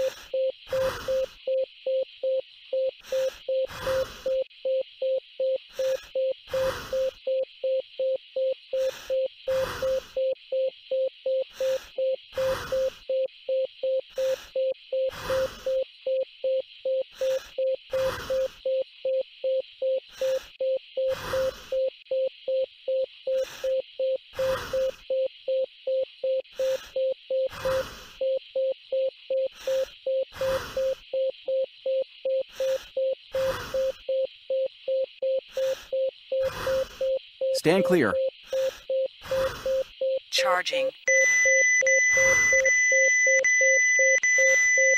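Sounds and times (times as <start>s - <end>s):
heart monitor beeps: 0.0s - 44.9s.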